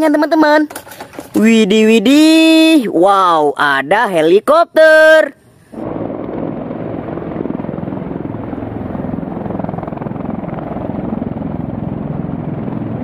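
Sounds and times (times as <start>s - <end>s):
helicopter rotor chopping: 5.7s - 13.0s
turbine engines: 5.8s - 13.0s.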